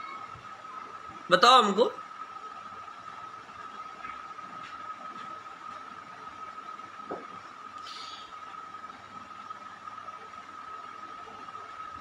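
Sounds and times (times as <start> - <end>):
background hiss: 7.7 - 9.2.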